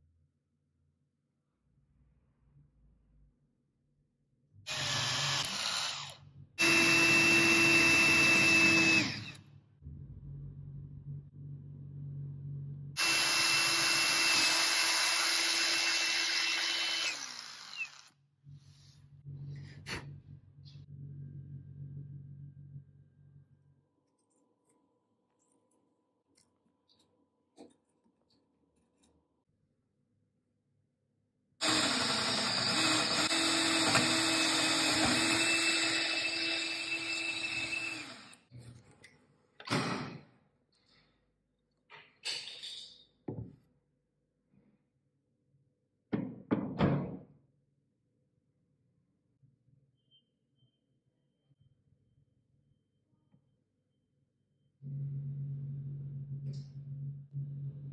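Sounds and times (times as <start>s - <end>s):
cordless drill boring into wood: 4.7s - 9.4s, 13.0s - 18.2s, 31.6s - 38.5s.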